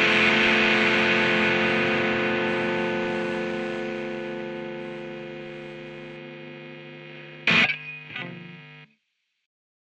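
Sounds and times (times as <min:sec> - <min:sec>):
electric guitar chords: 0:00.0 - 0:08.9.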